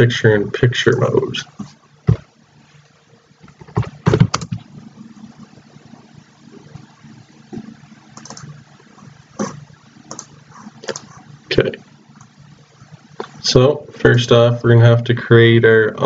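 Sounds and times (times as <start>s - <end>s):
faint low hum: 0.0s - 16.0s
keyboard and mouse clicks: 3.5s - 4.6s, 8.1s - 8.6s, 10.1s - 11.1s.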